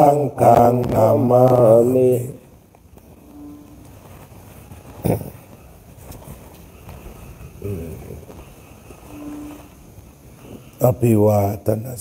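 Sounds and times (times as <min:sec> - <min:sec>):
faint hum: 0:00.0 - 0:12.0
faint rustling: 0:00.4 - 0:11.2.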